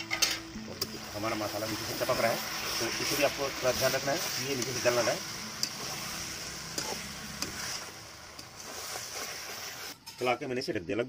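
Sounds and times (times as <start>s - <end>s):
food sizzling in a pan: 0.0s - 10.4s.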